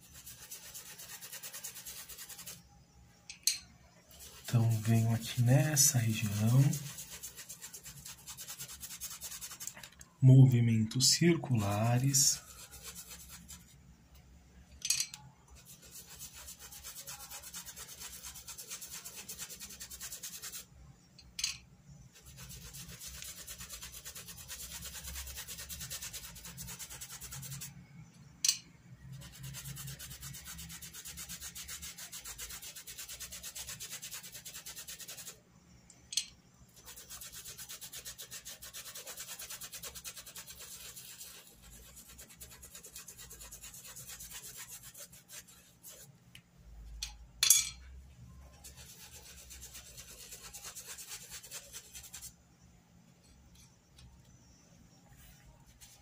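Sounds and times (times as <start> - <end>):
paintbrush scrubbing fabric: 0.0 - 2.7, 4.1 - 9.8, 11.0 - 13.8, 15.5 - 20.7, 22.1 - 27.8, 29.1 - 35.4, 36.8 - 46.2, 48.5 - 52.4, 55.1 - 56.0.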